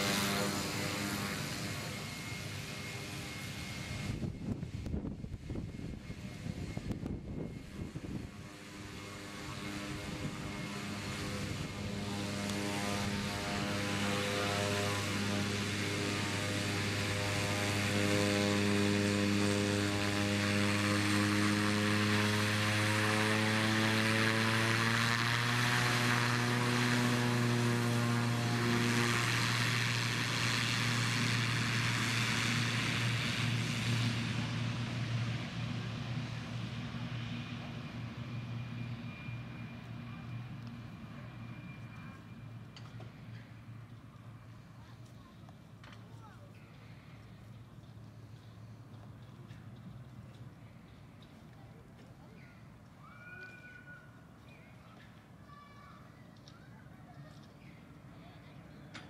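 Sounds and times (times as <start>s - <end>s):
propeller plane engine droning: 0.0s - 59.0s.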